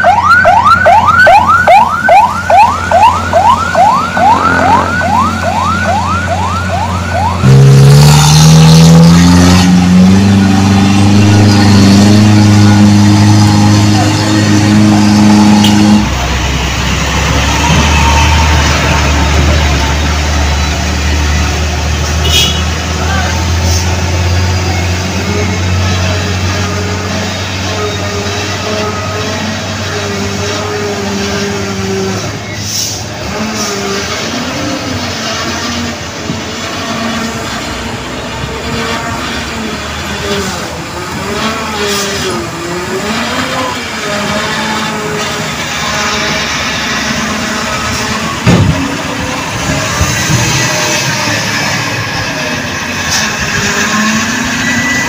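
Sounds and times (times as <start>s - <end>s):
emergency siren sweeps: 0.0s - 22.1s, 23.1s - 55.0s
truck engines rumbling: 0.0s - 55.0s
engine revving: 1.1s - 55.0s.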